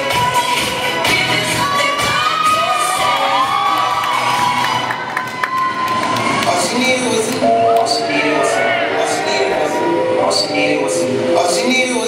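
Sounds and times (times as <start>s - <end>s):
dance music: 0.0s - 12.0s
audience cheering and shouting: 1.7s - 10.8s.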